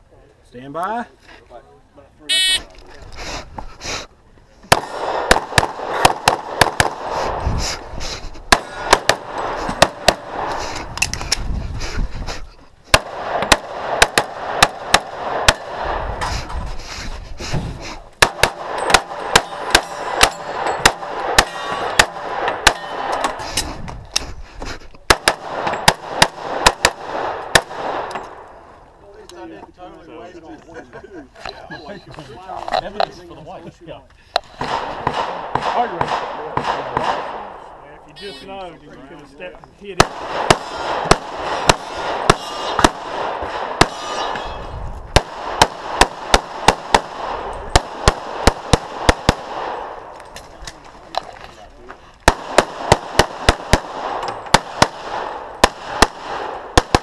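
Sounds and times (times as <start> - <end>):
shot timer beep: 2.3 - 2.6.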